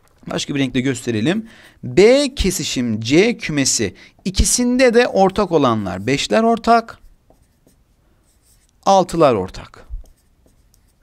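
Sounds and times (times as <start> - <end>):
man talking: 0.2 - 7.0, 8.8 - 9.9
marker scratching on paper: 5.2 - 9.2, 9.9 - 11.0.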